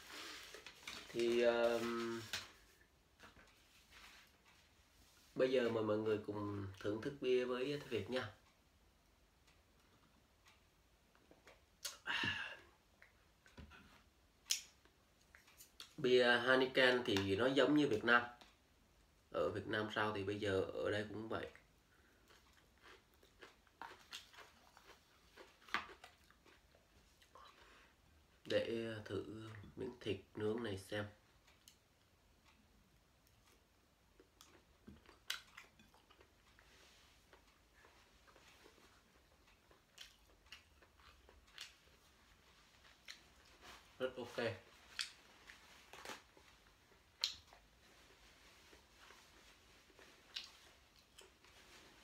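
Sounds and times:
man chewing food: 2.3s - 5.4s, 8.4s - 16.0s, 21.6s - 28.5s, 31.2s - 44.0s, 44.6s - 52.0s.

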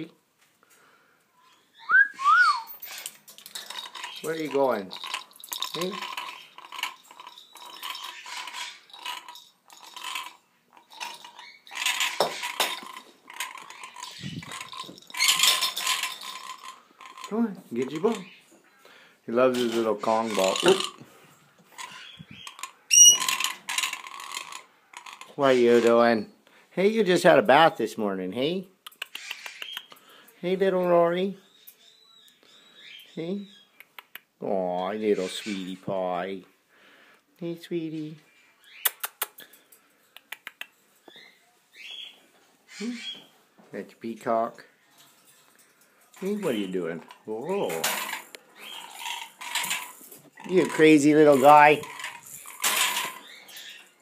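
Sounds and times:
bird faint high whistle: 1.8s - 2.7s
toys clattering against wire cage: 2.7s - 18.3s, 19.3s - 26.2s, 44.3s - 54.0s
bird shrill rasping screech: 21.9s - 23.3s.

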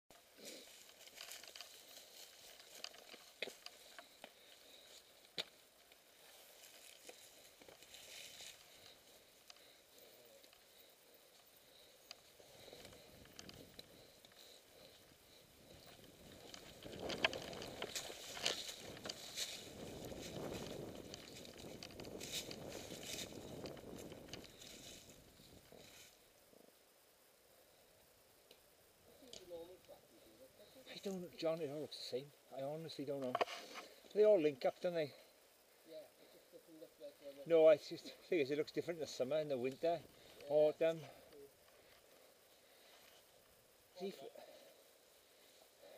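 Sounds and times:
bike tyres on dry leaves: 0.4s - 9.8s, 11.8s - 26.2s
bike tyres rumbling through leaves: 16.0s - 25.1s.

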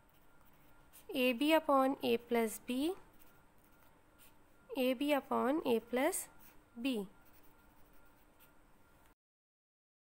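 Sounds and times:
pen scratching on paper: 0.0s - 4.4s, 5.1s - 8.6s.

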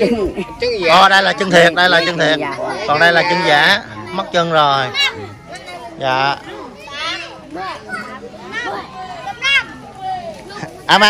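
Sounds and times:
children's voices: 0.0s - 11.0s
people talking over each other: 0.0s - 11.0s.

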